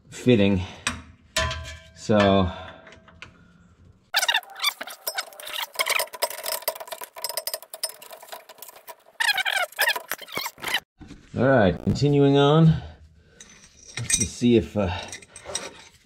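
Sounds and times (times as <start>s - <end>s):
metal fitting squeaking: 4.2s - 10.8s
wrench clicking and rattling on metal: 5.0s - 10.1s.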